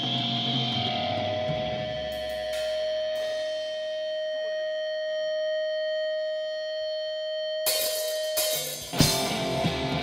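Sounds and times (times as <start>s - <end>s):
sustained electric guitar tone: 0.0s - 10.0s
drum kit crashing: 7.7s - 10.0s.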